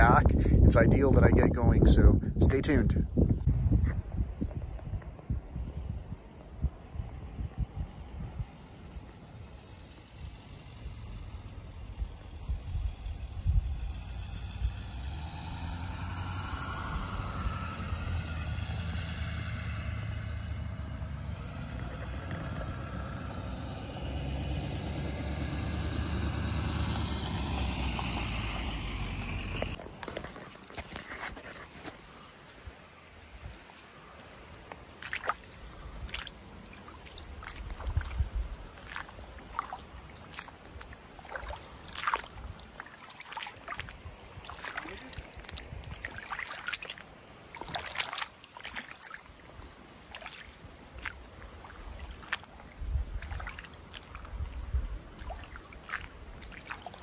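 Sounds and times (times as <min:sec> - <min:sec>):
wind rumbling on microphone: 0:00.0 - 0:34.1, 0:35.0 - 0:48.3, 0:49.5 - 0:57.0
motor vehicle passing: 0:07.2 - 0:29.8.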